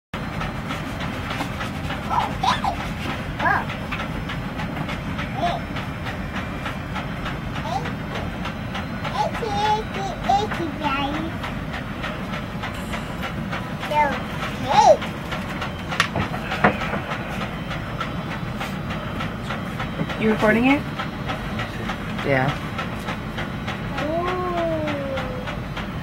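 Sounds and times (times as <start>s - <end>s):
steady background noise: 0.2s - 26.0s.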